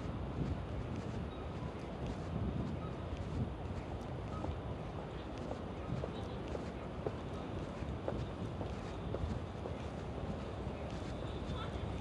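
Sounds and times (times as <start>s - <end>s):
city street noise hum: 0.0s - 12.0s.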